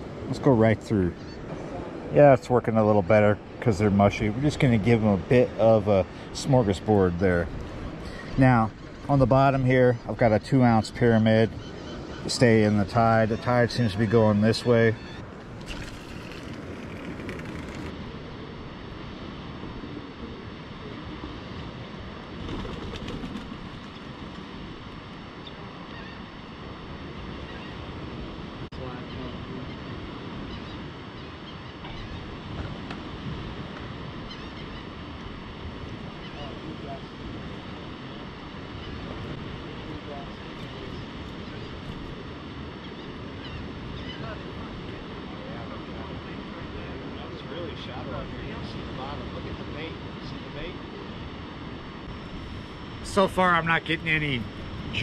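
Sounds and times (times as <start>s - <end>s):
surf: 0.0s - 55.0s
wind: 0.0s - 55.0s.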